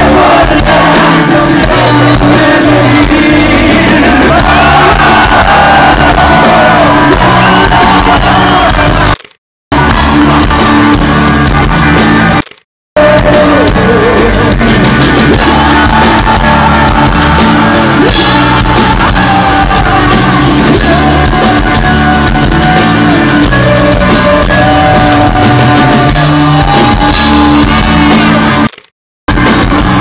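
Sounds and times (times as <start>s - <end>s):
male lead vocal: 0.0s - 9.0s, 13.0s - 27.2s
live rock band playing: 0.0s - 30.0s.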